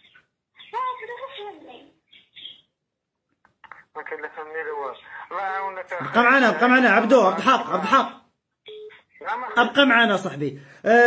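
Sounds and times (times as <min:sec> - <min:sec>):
voice over telephone call: 0:03.7 - 0:10.3
telephone beep: 0:08.6 - 0:09.1.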